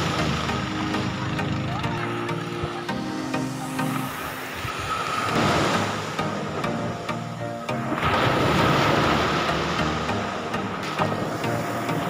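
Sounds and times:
small waves breaking on sand: 7.9 - 12.0.

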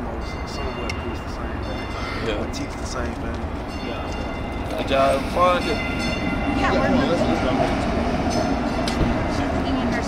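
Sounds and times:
train rumble and hum: 0.0 - 10.0.

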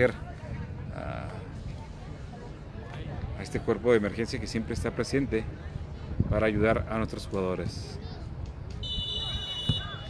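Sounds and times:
faint distant voices: 0.0 - 10.0
referee's whistle blown: 8.8 - 10.0.

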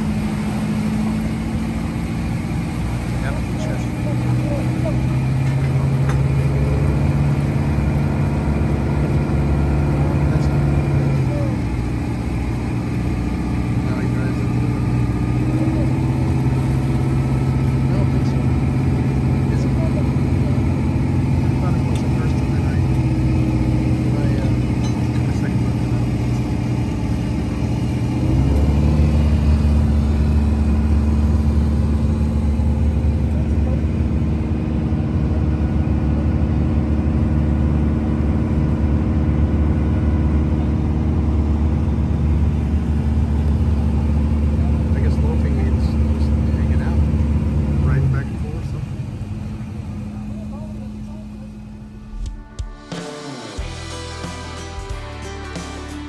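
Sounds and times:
engine droning: 0.0 - 56.0.

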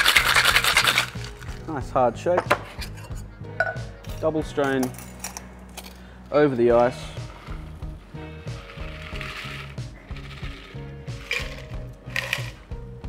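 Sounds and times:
background music with beat: 0.0 - 4.6, 6.8 - 13.0.

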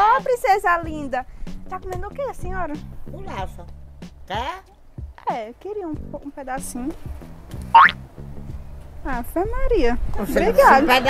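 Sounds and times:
background music with low notes: 0.0 - 11.0
cartoon upward whistle glide: 7.8 - 8.0.

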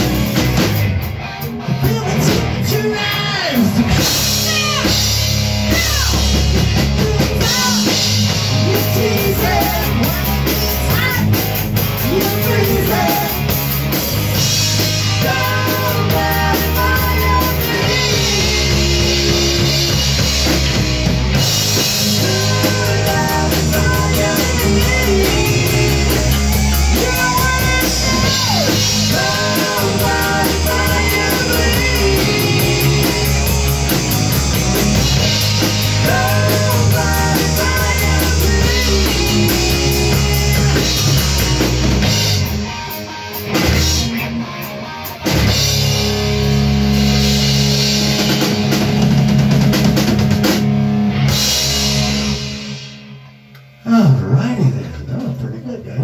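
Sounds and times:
drum kit: 0.0 - 56.0
electric guitars: 0.0 - 56.0
man singing: 1.8 - 4.0, 7.0 - 11.2, 12.0 - 13.6, 15.1 - 20.2, 22.0 - 33.6, 35.9 - 41.3.

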